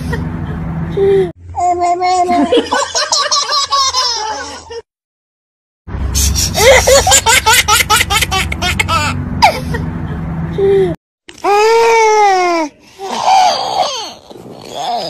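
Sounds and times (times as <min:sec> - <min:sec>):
baby laughing: 0:01.6 - 0:04.8, 0:06.6 - 0:09.8.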